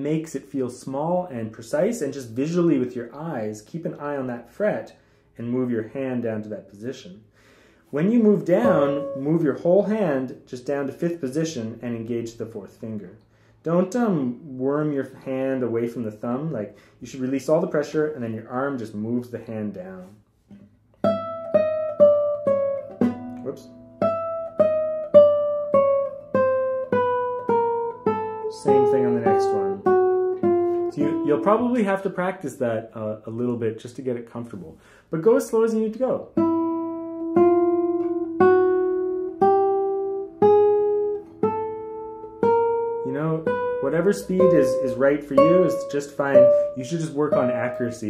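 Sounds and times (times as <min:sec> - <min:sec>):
classical guitar descending scale: 0:08.2 - 0:10.2, 0:21.0 - 0:32.1, 0:36.2 - 0:48.0.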